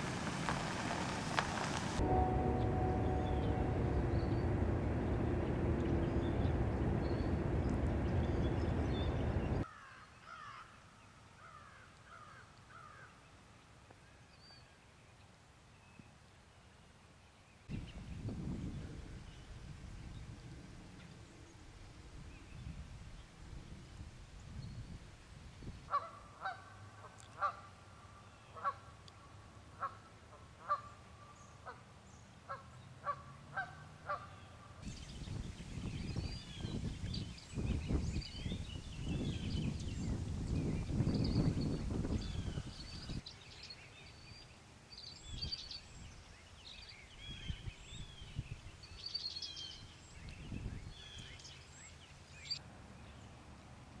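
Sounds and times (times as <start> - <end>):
low rumbling noise: 0.0 - 9.6
outdoor ambience: 0.0 - 47.0, 48.8 - 54.0
loud rushing noise: 0.8 - 9.6
crow cawing: 9.7 - 10.7.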